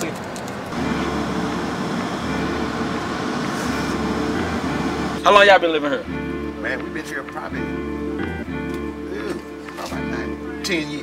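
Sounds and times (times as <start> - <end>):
car engine and road hum: 0.0 - 6.6.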